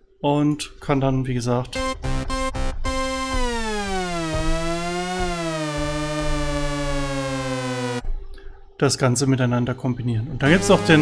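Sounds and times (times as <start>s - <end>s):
buzzy synthesizer tone gliding: 1.8s - 8.0s, 10.5s - 11.0s.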